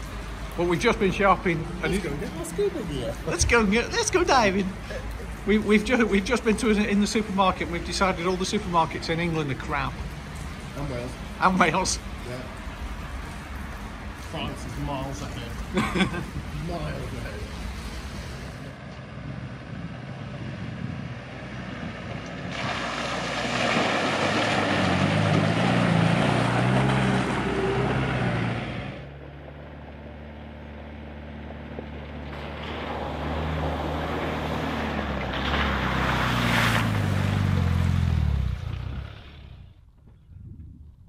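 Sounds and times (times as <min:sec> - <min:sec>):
vehicle driving past on dirt: 0:18.8 - 0:40.2.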